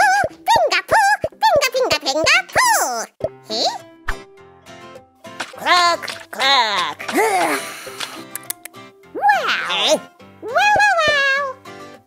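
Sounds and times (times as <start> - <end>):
children's music: 0.0 - 12.0.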